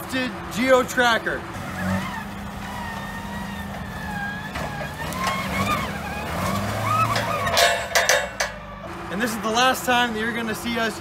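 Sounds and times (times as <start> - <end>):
off-road vehicle engine running: 0.0 - 11.0
sharp knocks and rattles: 3.8 - 8.7.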